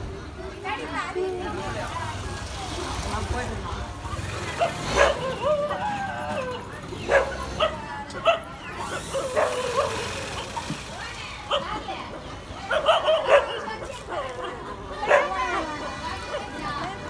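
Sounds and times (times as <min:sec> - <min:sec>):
people's voices: 0:00.0 - 0:17.0
dog barking and yipping: 0:04.5 - 0:05.9, 0:07.0 - 0:10.5, 0:12.6 - 0:15.6.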